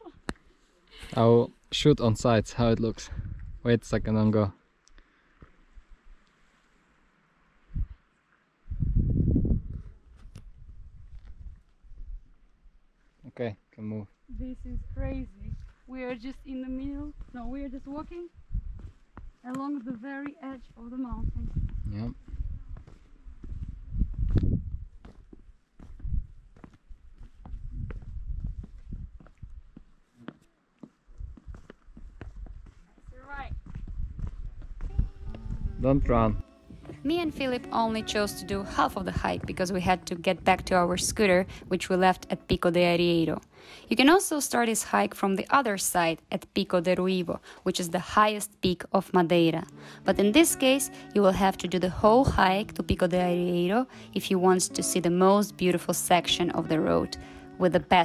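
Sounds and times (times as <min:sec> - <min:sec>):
wind buffeting microphone: 0:02.0 - 0:04.2, 0:07.7 - 0:08.0, 0:08.6 - 0:12.2, 0:14.3 - 0:19.0, 0:20.6 - 0:25.1, 0:25.9 - 0:29.8, 0:31.1 - 0:42.2
low rumble: 0:08.7 - 0:12.2, 0:33.4 - 0:41.8
footsteps on stone path: 0:10.1 - 0:12.0, 0:15.5 - 0:35.6.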